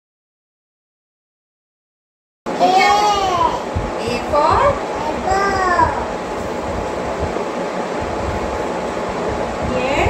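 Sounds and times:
air conditioner hissing and humming: 0:02.5 - 0:10.0.

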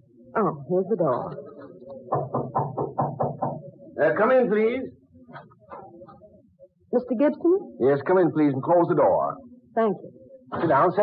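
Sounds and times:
knocking on wooden door: 0:02.1 - 0:03.7.

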